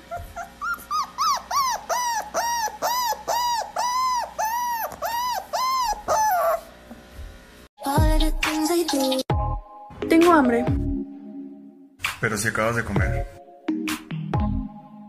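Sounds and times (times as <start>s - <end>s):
puppy whining: 0.0s - 6.8s.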